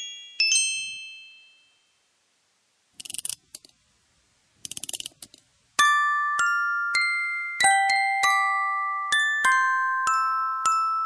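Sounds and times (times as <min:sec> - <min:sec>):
music box notes ringing: 0:00.0 - 0:02.0, 0:05.8 - 0:11.0.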